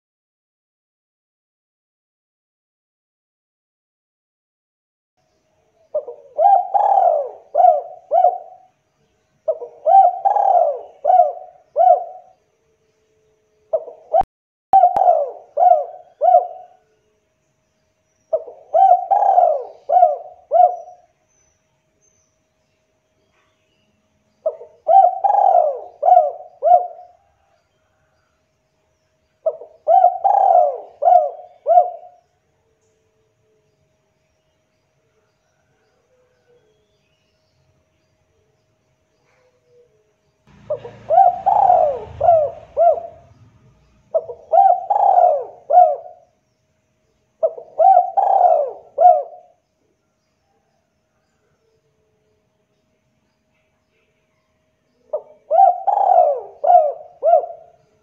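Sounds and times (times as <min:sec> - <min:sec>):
dove cooing: 0:05.9 - 0:08.7, 0:09.4 - 0:12.4, 0:13.7 - 0:14.2, 0:14.8 - 0:16.8, 0:18.3 - 0:21.1, 0:24.4 - 0:27.6, 0:29.4 - 0:32.2, 0:39.2 - 0:46.3, 0:47.4 - 0:49.6, 0:55.1 - 0:57.8.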